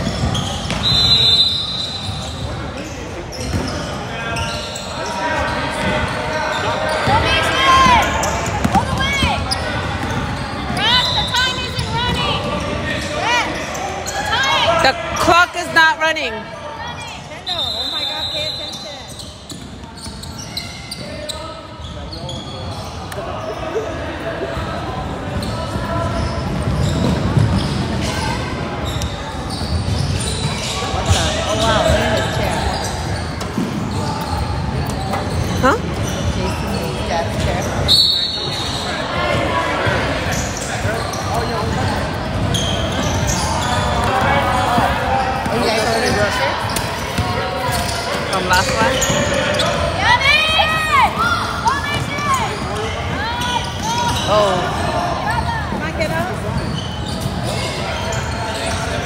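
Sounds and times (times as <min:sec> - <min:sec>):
basketball bouncing: 0:00.0 - 0:00.9, 0:07.8 - 0:10.8
sneakers squeaking on gym floor: 0:00.0 - 0:59.0
voices echoing: 0:00.0 - 0:59.0.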